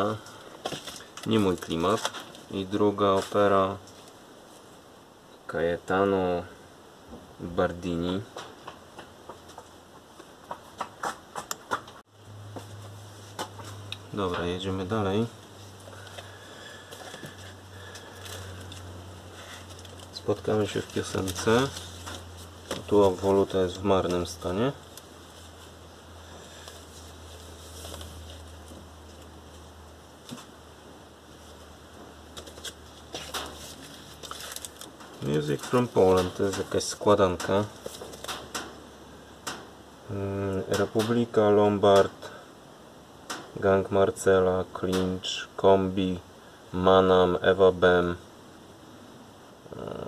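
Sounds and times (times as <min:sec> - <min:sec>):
cardboard record sleeves rustling: 0:00.0 - 0:04.8, 0:12.5 - 0:30.6, 0:31.2 - 0:38.4
steady low hum: 0:00.0 - 0:50.0.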